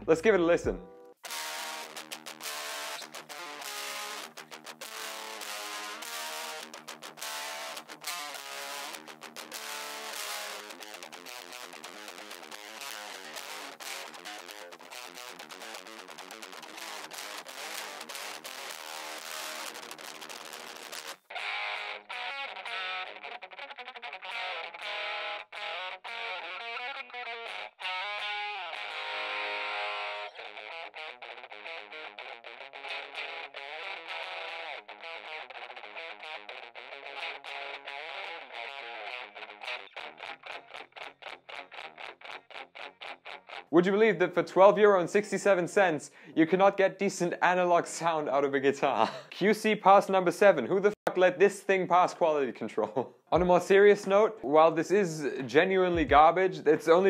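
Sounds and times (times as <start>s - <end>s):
distorted electric guitar: 0.0s - 43.7s, 53.1s - 57.0s.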